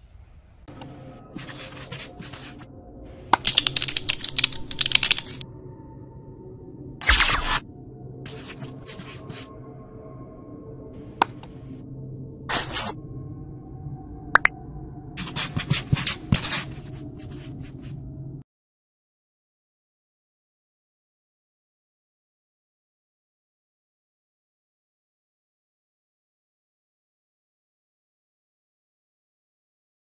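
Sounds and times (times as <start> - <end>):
faint background music: 0.0 - 6.4, 7.0 - 11.8, 15.2 - 18.4
rapid keyboard typing: 1.4 - 2.6, 3.4 - 5.4, 15.2 - 17.8
marker scratching on whiteboard: 1.4 - 2.7, 8.3 - 9.5, 15.2 - 18.0.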